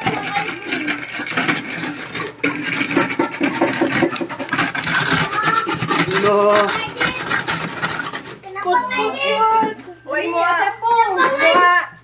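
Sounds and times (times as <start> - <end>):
ice scraped on metal grater: 0.0 - 9.6.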